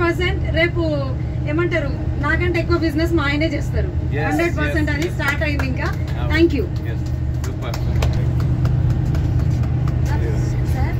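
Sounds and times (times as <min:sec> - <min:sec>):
bus engine drone from inside: 0:00.0 - 0:10.9.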